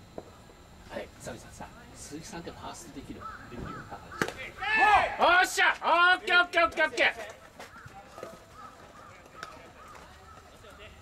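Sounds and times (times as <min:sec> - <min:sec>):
bat cracking baseball: 0:04.1 - 0:04.6
people yelling: 0:04.2 - 0:07.2.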